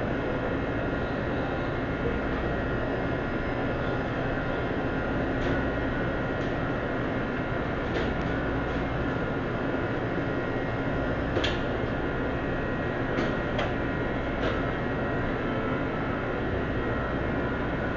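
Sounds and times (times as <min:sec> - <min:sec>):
kitchen equipment and ventilation hum: 0:00.0 - 0:17.9.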